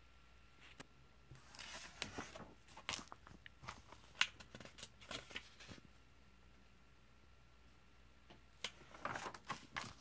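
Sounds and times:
paper pages rustling: 0:00.7 - 0:05.9, 0:08.6 - 0:10.0
paper page snap: 0:04.0 - 0:05.4.

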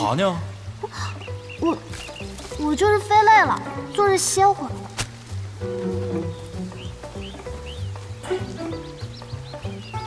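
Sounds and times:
high bird-like chirps: 0:01.0 - 0:02.6, 0:05.6 - 0:10.0.

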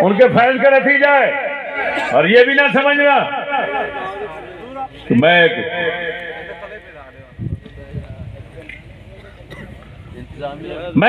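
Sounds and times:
man's voice through loudspeaker: 0:00.0 - 0:09.6, 0:10.2 - 0:11.0.

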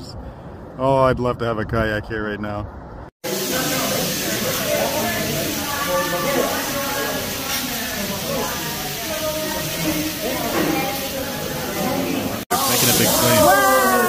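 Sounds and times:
vegetables sizzling on a griddle: 0:03.2 - 0:14.0.

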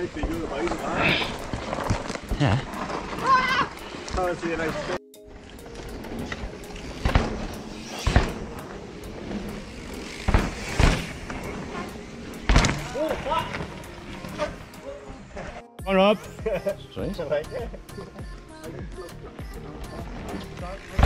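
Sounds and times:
bike tyres rolling on dirt: 0:00.0 - 0:15.6, 0:19.2 - 0:21.0
background music with steady beat: 0:04.2 - 0:21.0
sharp thuds of bike landings: 0:07.0 - 0:14.6, 0:20.1 - 0:21.0.

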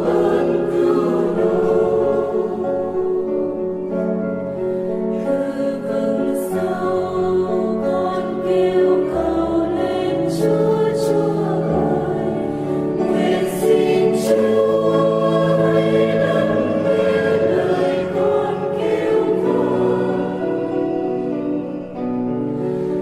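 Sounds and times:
choir singing slow psalm: 0:00.0 - 0:23.0.

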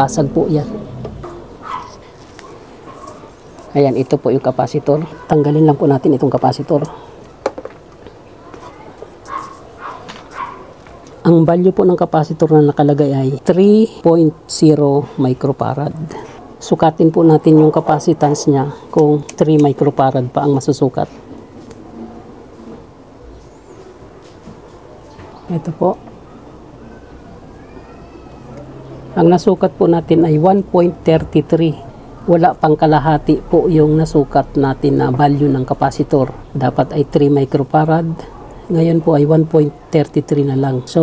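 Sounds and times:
steady background noise: 0:00.0 - 0:41.0
animal yelping: 0:00.6 - 0:03.7.

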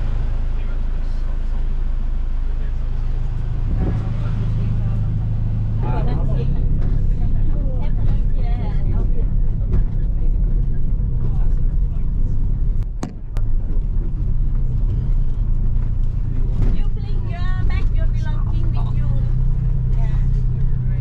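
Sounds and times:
car engine and road rumble: 0:00.0 - 0:21.0.

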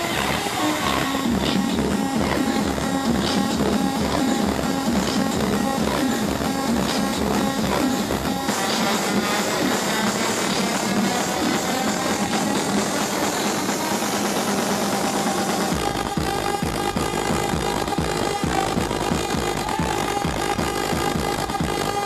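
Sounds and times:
loud live techno music: 0:00.0 - 0:22.0
steady kick drum: 0:01.2 - 0:22.0.

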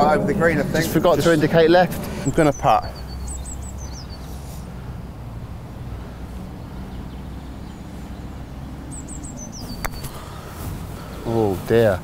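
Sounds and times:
bird chirping: 0:00.0 - 0:12.0
low outdoor rumble: 0:00.0 - 0:12.0.

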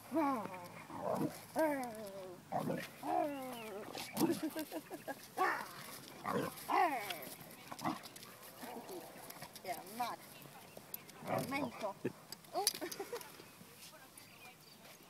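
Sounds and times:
woman laughing: 0:04.2 - 0:05.5, 0:12.6 - 0:13.4.

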